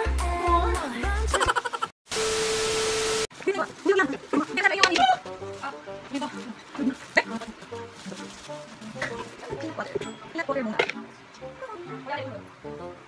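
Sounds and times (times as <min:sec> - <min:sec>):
pop song with singing: 0:00.0 - 0:01.5.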